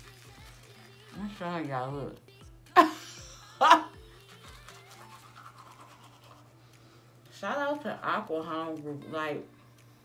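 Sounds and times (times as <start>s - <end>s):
toothbrush scrubbing teeth: 4.0s - 6.8s.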